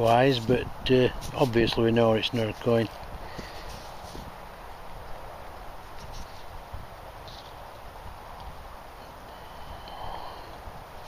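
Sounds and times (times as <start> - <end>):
low wind rumble on microphone: 0.0 - 11.0
faint short rustles: 1.2 - 4.4, 5.8 - 6.6.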